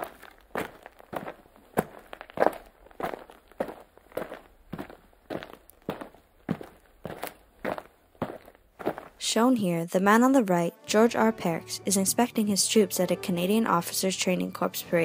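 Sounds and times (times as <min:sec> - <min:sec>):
crisp footsteps: 0:00.0 - 0:09.4.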